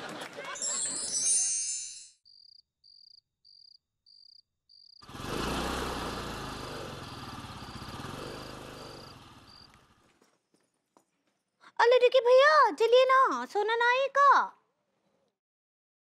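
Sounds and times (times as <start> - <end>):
crickets chirping: 2.2 - 5.0, 6.4 - 9.8
motorbike engine passing: 5.0 - 10.3.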